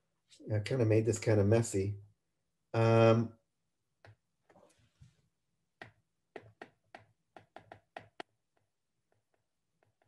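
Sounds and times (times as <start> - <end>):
stylus tapping on tablet screen: 4.0 - 4.6, 5.8 - 10.0.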